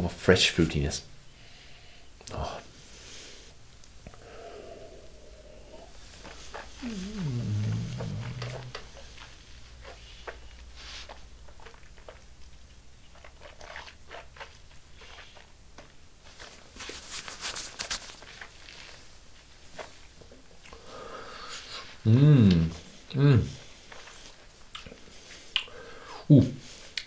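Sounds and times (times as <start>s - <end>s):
sharp slurping: 4.0s - 12.3s, 13.1s - 15.6s
lip and tongue clicks: 6.2s - 12.3s, 24.7s - 25.8s.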